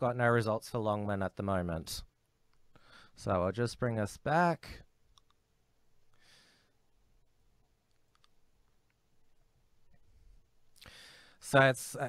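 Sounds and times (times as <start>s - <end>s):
soft breath: 2.7s - 3.2s, 6.1s - 6.9s, 10.0s - 11.4s
faint clicks: 7.8s - 9.0s.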